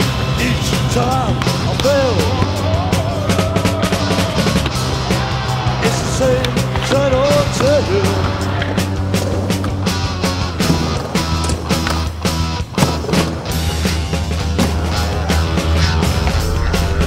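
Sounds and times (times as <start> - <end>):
skateboards clacking: 0.0 - 16.6
rock music with vocals: 0.0 - 17.0
skateboard wheels rolling on concrete: 0.0 - 17.0.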